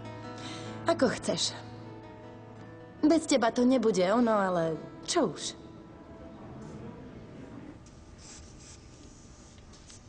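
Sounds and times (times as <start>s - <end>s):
pencil scratching on paper: 8.2s - 10.0s.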